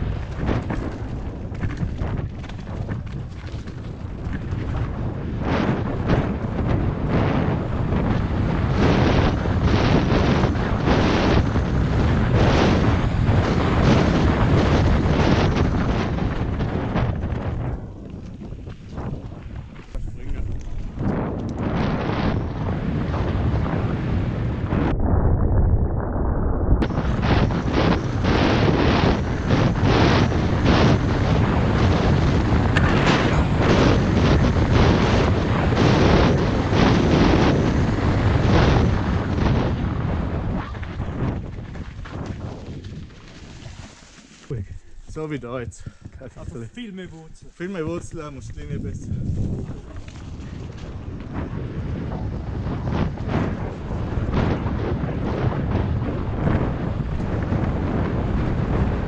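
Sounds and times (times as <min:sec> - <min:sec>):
mountain bike rattling over rocks: 0:00.0 - 0:06.4, 0:11.2 - 0:21.4, 0:28.8 - 0:44.6, 0:48.5 - 0:54.3
wind buffeting microphone: 0:00.0 - 0:59.0.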